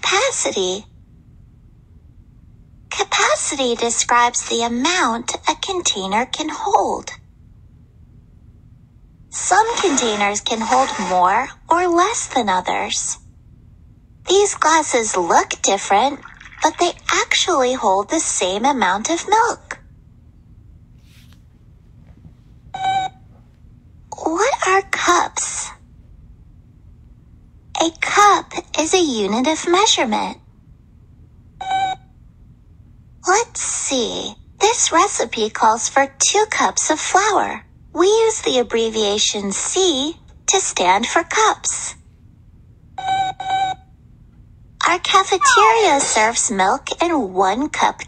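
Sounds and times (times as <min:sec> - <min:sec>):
short electronic beep: 0:45.4 - 0:45.9.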